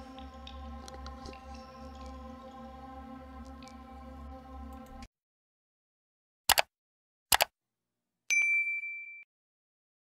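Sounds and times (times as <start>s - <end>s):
bright bell chime: 8.3s - 9.3s.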